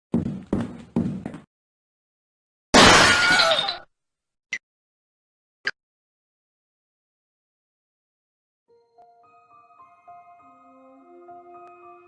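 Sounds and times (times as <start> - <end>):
glass shattering crash: 2.8 - 3.8.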